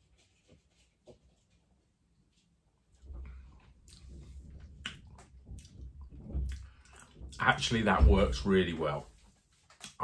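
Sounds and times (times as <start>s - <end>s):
lip smacks: 4.8s - 5.8s.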